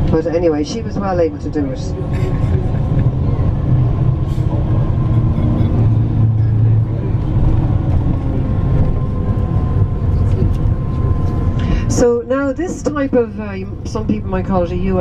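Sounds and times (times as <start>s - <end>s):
bus engine and road rumble: 0.0s - 15.0s.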